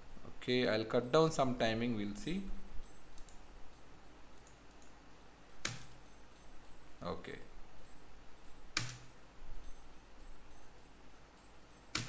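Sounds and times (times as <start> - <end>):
faint steady hum: 0.0 - 12.0
computer mouse and keys clicking: 2.2 - 6.8, 7.8 - 12.0.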